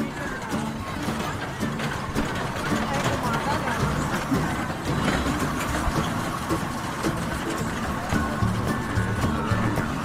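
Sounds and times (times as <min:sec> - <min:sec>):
ride cars rumbling on rail track: 0:00.0 - 0:10.0.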